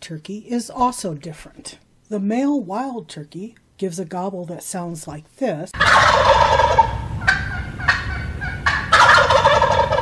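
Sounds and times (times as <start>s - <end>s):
turkey gobbling: 5.8s - 10.0s
turkey short calls: 5.8s - 10.0s.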